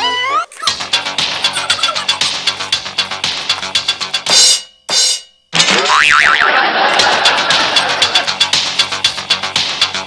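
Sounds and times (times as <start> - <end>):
background music: 0.0 - 10.0
cartoon boing sound effect: 5.6 - 6.5.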